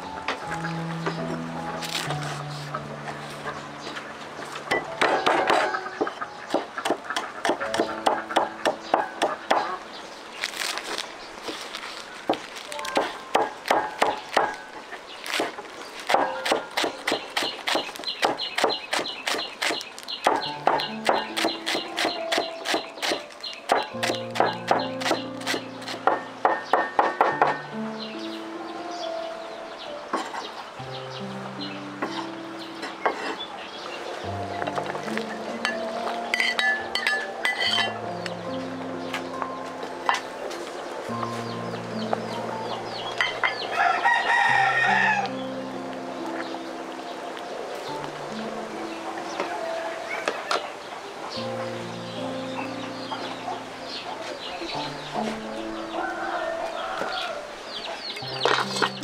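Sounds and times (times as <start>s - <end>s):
cleaver chopping on wooden block: 4.8s - 9.7s, 12.3s - 14.6s, 15.3s - 27.6s
rooster crowing: 43.6s - 45.4s, 55.7s - 57.8s.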